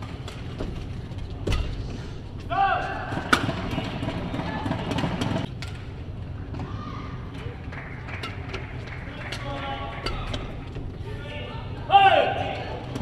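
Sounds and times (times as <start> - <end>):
racket hitting shuttlecock: 3.0 - 4.2
voices and crowd noise: 6.6 - 13.0.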